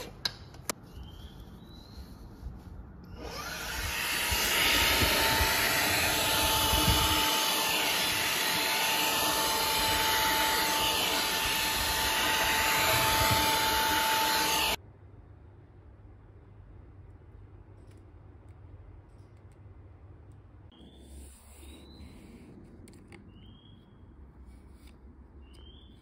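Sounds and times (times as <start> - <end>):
handheld vacuum motor humming: 3.2 - 14.8.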